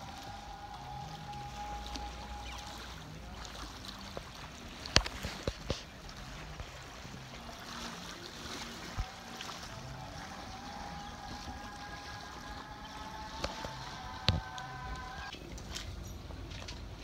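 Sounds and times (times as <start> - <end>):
water lapping: 0.0 - 17.0
high-pitched hum: 8.9 - 15.3.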